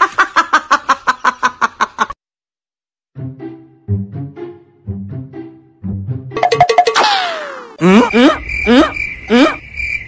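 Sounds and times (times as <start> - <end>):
ringing dings: 6.4 - 7.0
steady high tone: 6.4 - 7.5.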